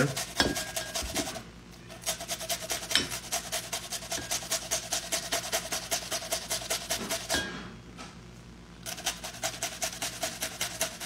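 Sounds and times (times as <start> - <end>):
cucumber grated on metal grater: 0.0 - 7.3, 8.8 - 11.0.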